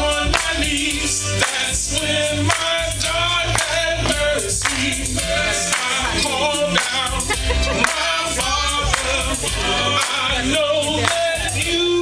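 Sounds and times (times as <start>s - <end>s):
band with deep bass: 0.0s - 12.0s
voices singing gospel: 0.0s - 12.0s.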